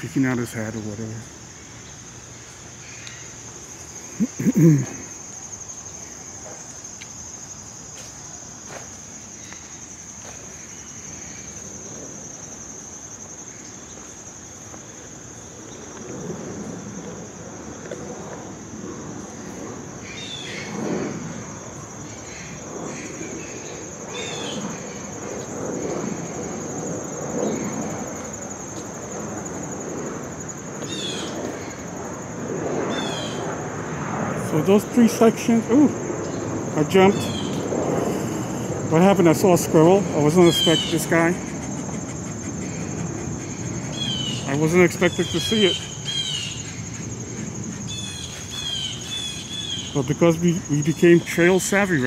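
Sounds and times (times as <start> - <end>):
high-pitched insect chorus: 0.0 - 52.0.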